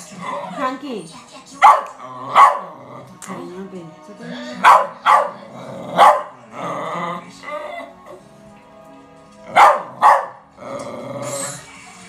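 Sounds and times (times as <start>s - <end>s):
dog barking: 1.6s - 2.8s, 4.6s - 6.4s, 9.5s - 10.4s.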